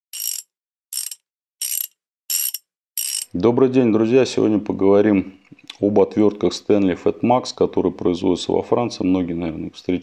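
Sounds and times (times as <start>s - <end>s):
ratchet clicking: 0.1s - 3.3s.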